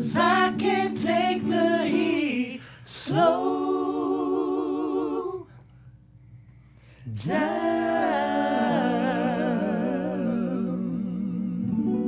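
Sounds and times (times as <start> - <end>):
women singing a cappella: 0.0 - 5.7, 7.0 - 12.0.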